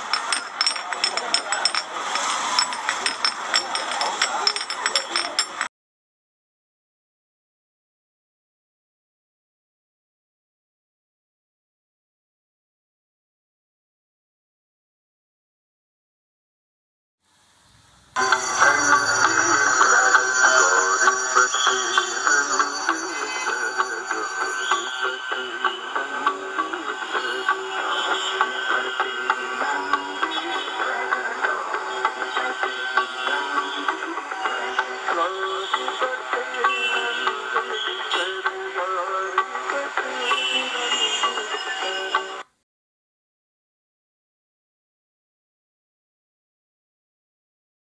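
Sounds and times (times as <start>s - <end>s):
music: 0.0s - 5.7s, 18.2s - 42.5s.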